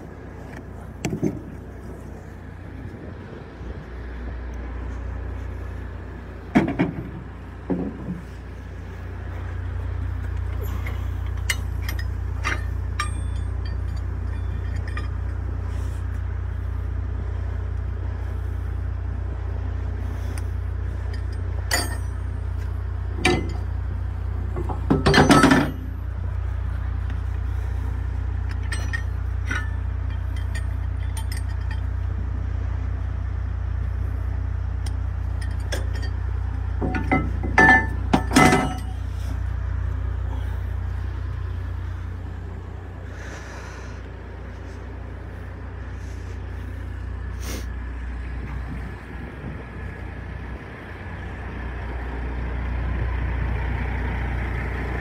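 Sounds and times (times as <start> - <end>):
steady low rumble: 0.0 - 55.0
steel chain clinking and rattling: 10.4 - 15.6, 20.9 - 23.7, 24.5 - 26.1, 28.4 - 32.1, 34.9 - 39.5.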